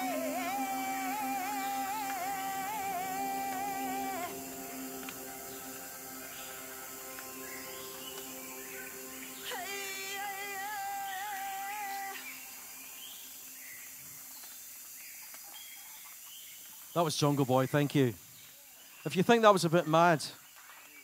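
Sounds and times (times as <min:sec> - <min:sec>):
keyboard chords: 0:00.0 - 0:13.8
wavering high note: 0:00.0 - 0:14.2
faint steady hum: 0:00.0 - 0:15.0.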